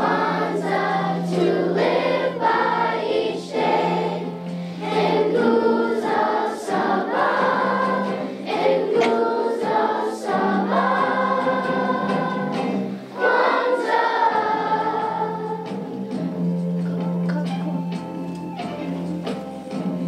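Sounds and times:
children's choir singing: 0.0 - 20.0.

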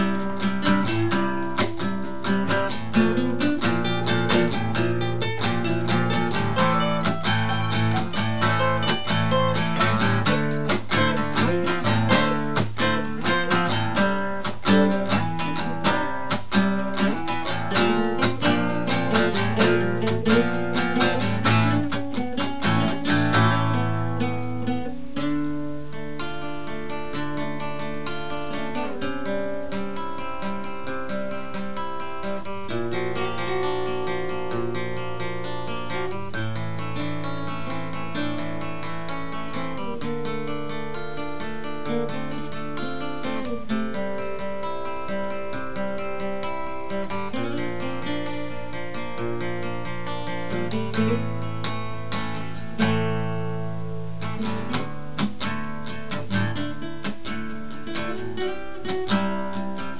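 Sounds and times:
acoustic guitars strumming and picking: 0.0 - 59.9.

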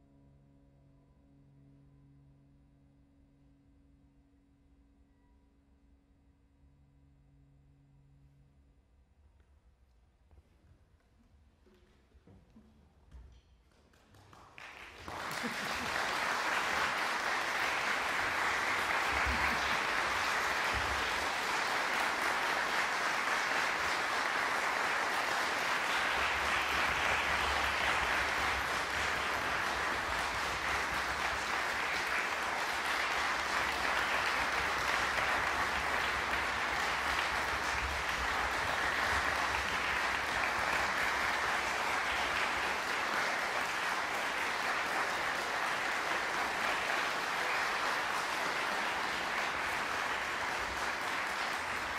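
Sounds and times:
audience applauding: 13.9 - 51.9.

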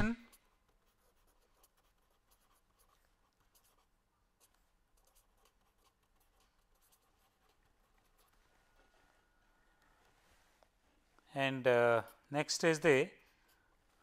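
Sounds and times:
pen scratching on paper: 0.3 - 8.4.

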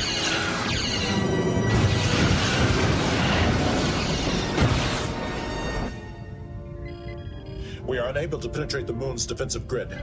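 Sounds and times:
orchestral battle music: 0.0 - 6.6
explosions: 1.6 - 6.0.

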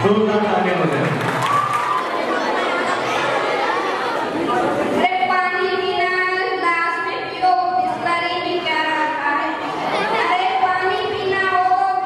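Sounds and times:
crowd of children chattering: 0.0 - 12.0
child singing through microphone: 5.0 - 12.0.

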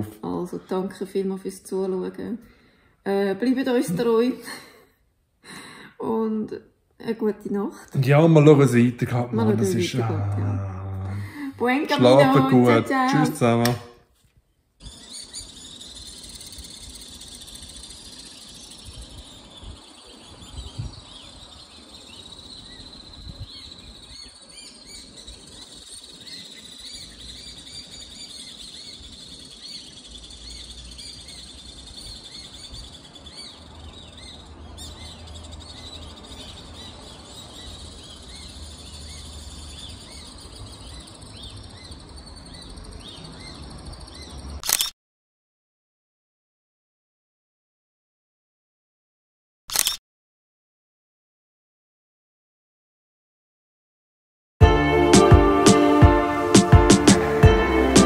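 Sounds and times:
swifts screaming: 14.8 - 44.6.

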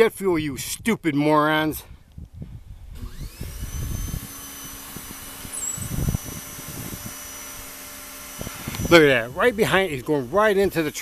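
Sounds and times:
lens zoom motor whining: 2.9 - 10.9.

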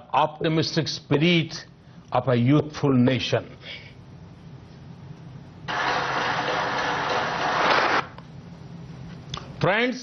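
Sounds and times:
audience applause: 5.7 - 8.1.

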